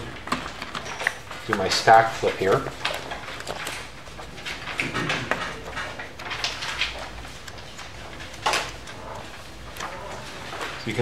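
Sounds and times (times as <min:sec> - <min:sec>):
paper sheets rustling: 0:00.0 - 0:11.0.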